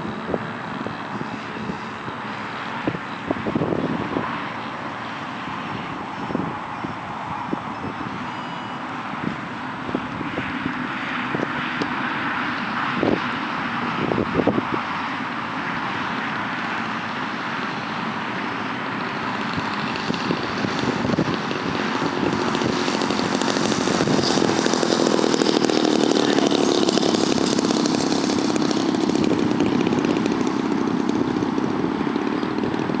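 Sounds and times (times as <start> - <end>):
small aircraft engine buzzing: 0.0 - 33.0.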